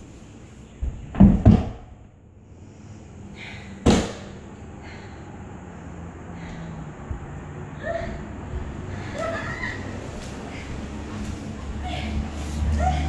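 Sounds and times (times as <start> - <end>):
body thudding on concrete floor: 0.8 - 2.0, 3.8 - 4.3.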